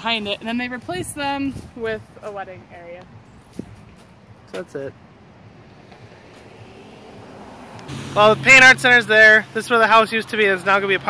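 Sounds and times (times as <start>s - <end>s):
low hum: 7.6s - 9.6s.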